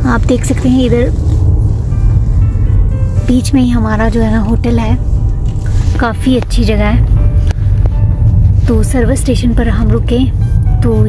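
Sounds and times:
car interior rumble: 0.0s - 11.0s
faint music: 0.0s - 11.0s.

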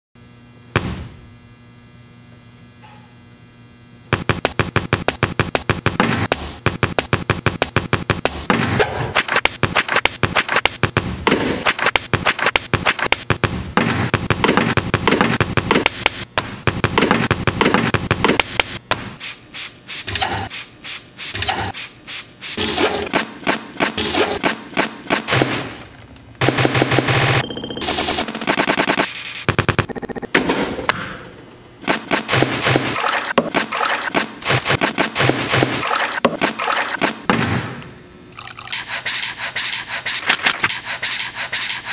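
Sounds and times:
rhythmic clicks and taps: 4.1s - 8.5s, 9.2s - 13.5s.

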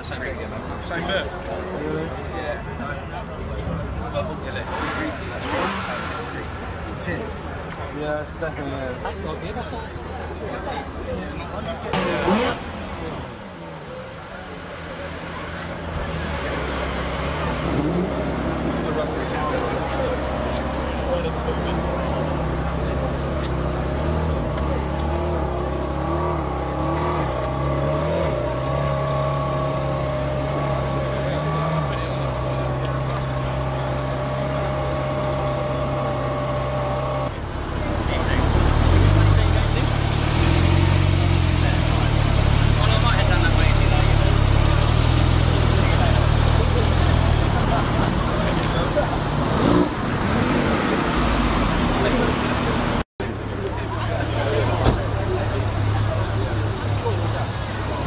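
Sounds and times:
people talking: 0.0s - 58.0s
sports car engine revving: 4.5s - 7.4s, 11.9s - 13.7s, 14.7s - 53.0s
car engine idling: 11.8s - 49.4s.

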